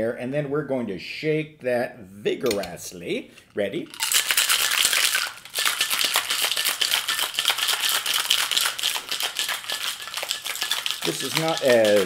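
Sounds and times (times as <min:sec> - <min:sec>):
ice rattling in cocktail shaker: 0:03.9 - 0:12.0.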